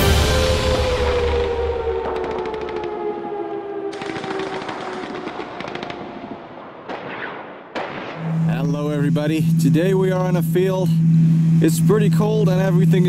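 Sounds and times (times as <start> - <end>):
sustained tone: 0.0 - 4.0, 8.2 - 13.0
rapid automatic gunfire: 2.2 - 2.9, 3.9 - 8.2.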